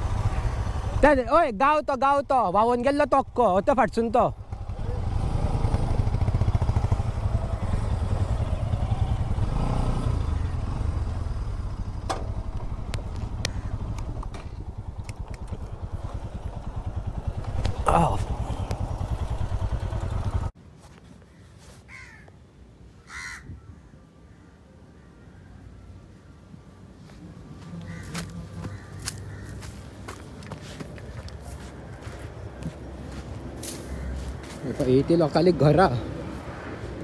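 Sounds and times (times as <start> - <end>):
motorcycle engine idling: 0.0 - 1.2, 2.6 - 20.5
short bird calls: 27.7 - 29.8.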